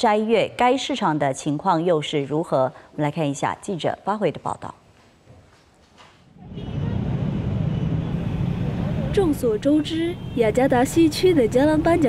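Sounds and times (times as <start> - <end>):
motorcycle traffic hum: 6.4 - 12.0.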